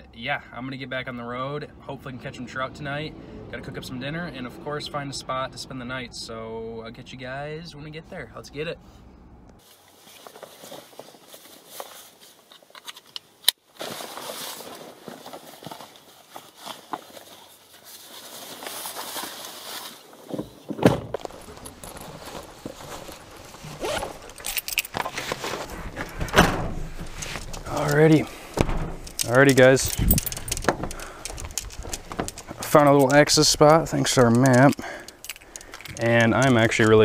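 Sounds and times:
fabric rustling: 13.7s - 37.0s
footsteps on gravel: 21.1s - 37.0s
buckle clicks: 28.5s - 37.0s
knocks: 28.6s - 29.1s.

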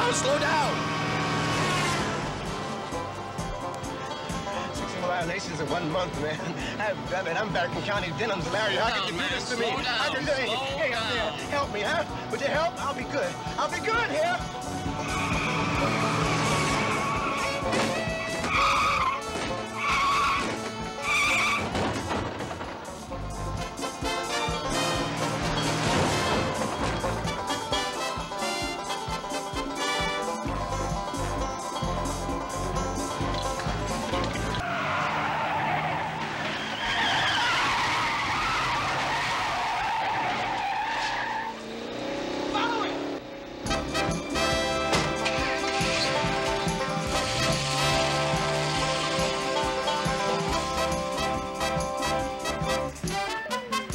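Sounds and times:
car engine rising: 0.0s - 10.2s, 10.8s - 27.9s, 28.9s - 51.6s
chase music: 0.0s - 34.7s, 41.7s - 53.9s
car tyres squealing: 0.0s - 53.1s.

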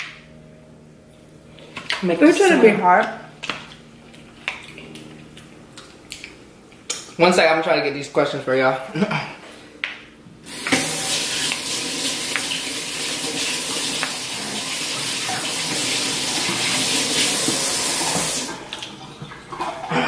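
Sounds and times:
tap water running into sink: 10.5s - 19.8s.

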